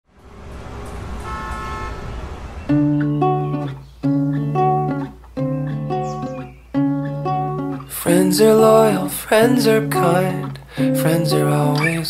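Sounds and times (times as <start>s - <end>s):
trolleybus passing: 0.0s - 5.4s
street traffic rumble: 0.0s - 6.4s
steady horn tone: 0.3s - 2.6s.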